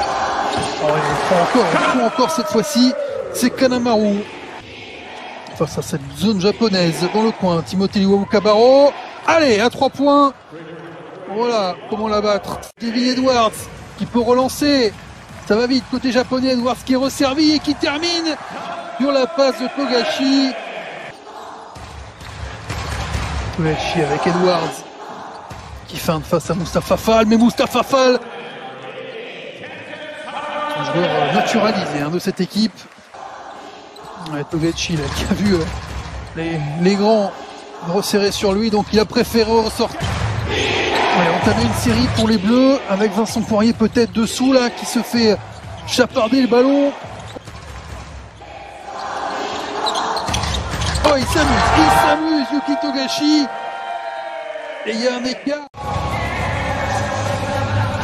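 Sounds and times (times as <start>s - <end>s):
crowd cheering: 0.0s - 58.0s
basketball bouncing on court: 13.6s - 16.8s, 47.0s - 48.4s.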